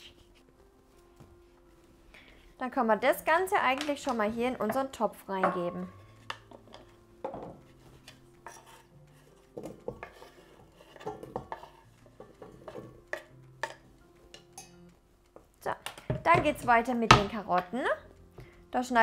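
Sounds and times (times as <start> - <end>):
knife scraping cutting board: 7.6 - 12.5.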